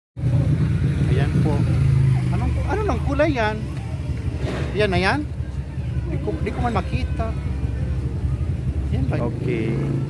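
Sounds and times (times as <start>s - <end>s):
faint voices talking: 0.2s - 10.0s
vehicle engine running: 0.2s - 10.0s.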